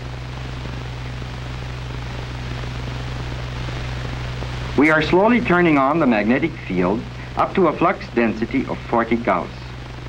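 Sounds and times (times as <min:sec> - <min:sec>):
low electrical hum: 0:00.0 - 0:10.0
steady hiss: 0:00.0 - 0:10.0.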